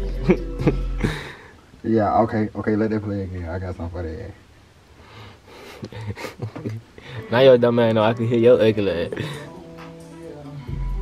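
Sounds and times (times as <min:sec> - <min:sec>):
man breathing: 0:00.9 - 0:01.7, 0:05.0 - 0:07.3, 0:09.1 - 0:09.6.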